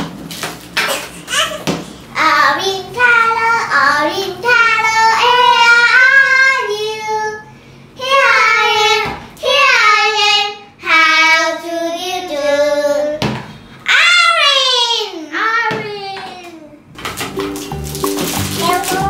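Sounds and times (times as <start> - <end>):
girl singing children's song: 2.1 - 13.3, 18.5 - 19.0.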